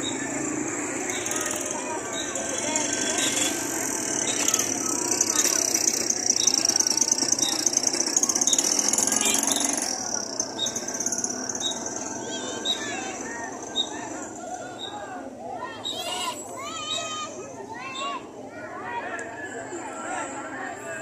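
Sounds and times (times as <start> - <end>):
motorcycle engine passing: 0.0 - 14.4
crowd voices: 0.0 - 21.0.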